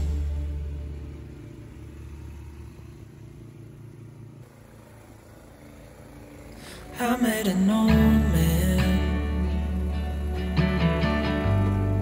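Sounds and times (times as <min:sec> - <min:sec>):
background music: 0:00.0 - 0:02.6, 0:05.6 - 0:12.0
snowblower engine running: 0:00.0 - 0:12.0.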